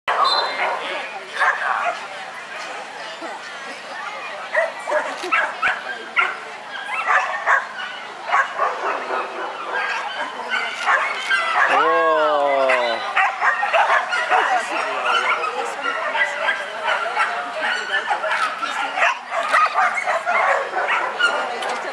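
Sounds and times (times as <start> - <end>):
dog barking in yips: 4.6 - 11.8, 12.6 - 21.5.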